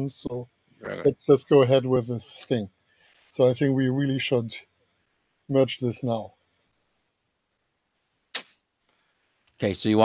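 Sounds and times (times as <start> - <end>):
brief sharp hiss: 8.3 - 8.6.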